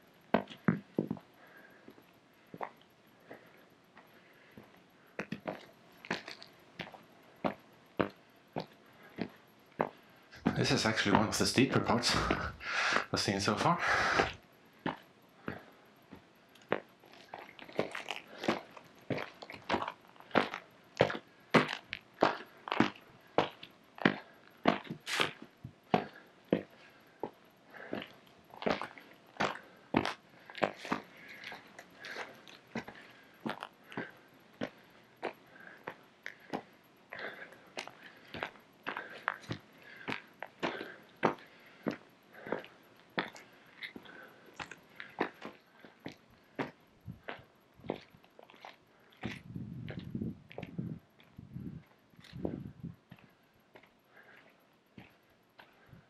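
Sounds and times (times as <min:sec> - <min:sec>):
footsteps crunching on gravel: 0:05.4 - 0:12.6, 0:16.7 - 0:26.7.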